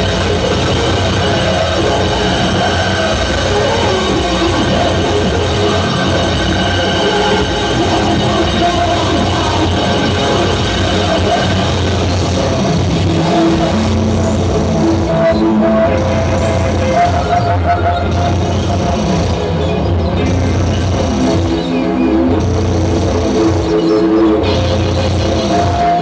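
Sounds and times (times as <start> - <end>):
held synthesizer notes: 0.0 - 26.0.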